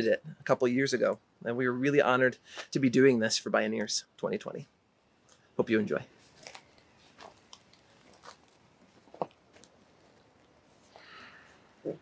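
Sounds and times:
footsteps crunching on mulch: 0:06.2 - 0:10.2.

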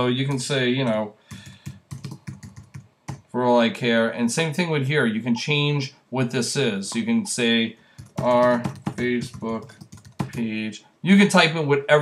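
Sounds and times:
computer keyboard typing: 0:00.3 - 0:03.3, 0:06.9 - 0:10.5.

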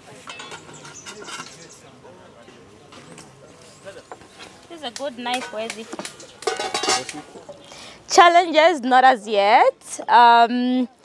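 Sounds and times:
metal pots clattering: 0:00.0 - 0:01.8, 0:05.3 - 0:07.5.

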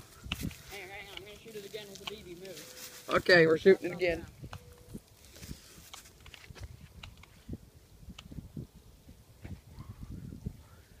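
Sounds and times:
rustling in dry grass: 0:00.0 - 0:07.7.

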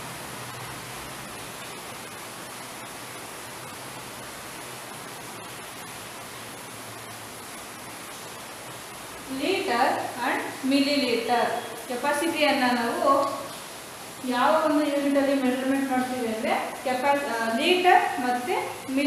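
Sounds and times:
room noise hiss: 0:00.0 - 0:19.0
woman speaking: 0:09.3 - 0:13.5, 0:14.2 - 0:19.0.

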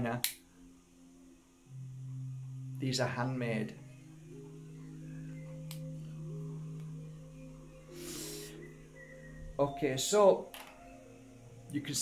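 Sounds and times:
drone background music: 0:00.0 - 0:12.0
breathy puff blowing out flame: 0:07.9 - 0:08.6.

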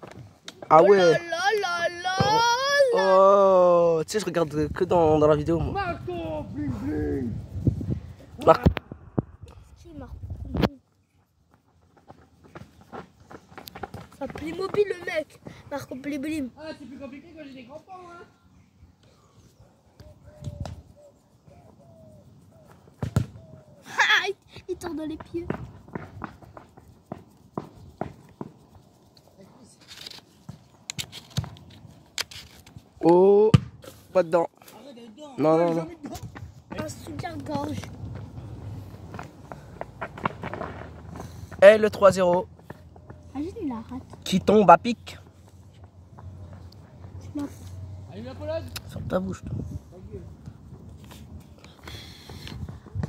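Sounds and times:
man calling out: 0:00.7 - 0:04.0
footsteps on dirt and grass: 0:24.7 - 0:33.0, 0:35.8 - 0:48.4
brief rustle: 0:29.1 - 0:32.9.

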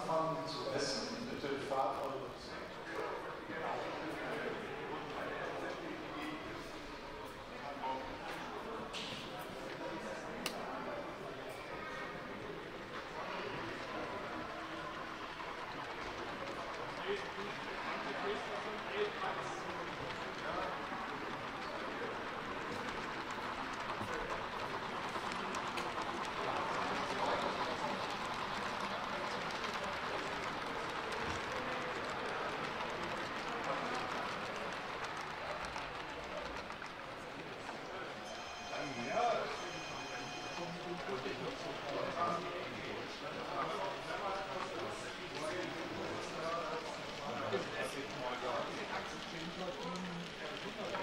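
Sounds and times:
murmur of voices: 0:00.0 - 0:51.0.

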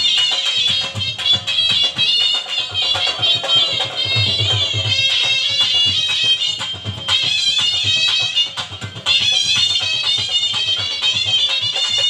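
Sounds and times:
shehnai melody: 0:00.0 - 0:12.0.

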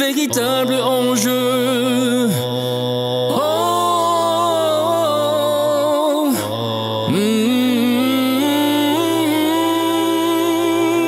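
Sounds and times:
low vocal drone: 0:00.0 - 0:11.0
man singing long note: 0:00.0 - 0:11.0.

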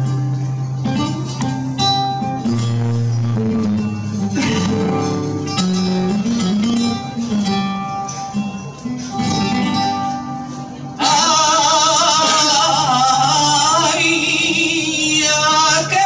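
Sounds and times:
flamenco guitar playing: 0:00.0 - 0:16.0.

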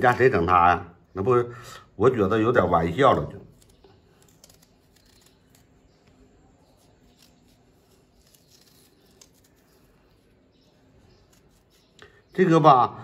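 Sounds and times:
knife cutting radish: 0:02.5 - 0:12.6.

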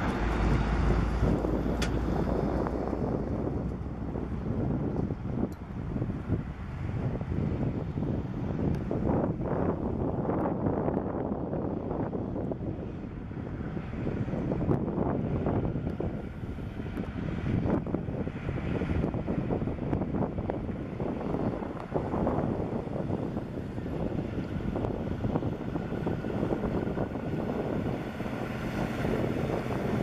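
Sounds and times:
heavy trucks on highway: 0:00.0 - 0:30.0
wind buffeting microphone: 0:00.0 - 0:30.0.

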